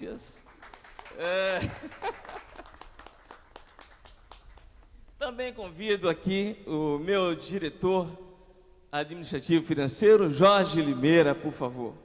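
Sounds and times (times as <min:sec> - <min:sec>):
sparse hand clapping: 0:00.5 - 0:05.2.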